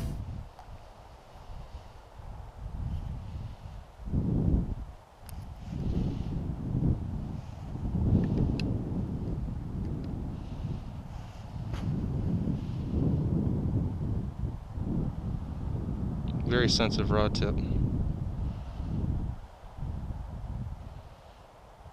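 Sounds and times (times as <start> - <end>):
wind buffeting microphone: 0.0 - 21.9.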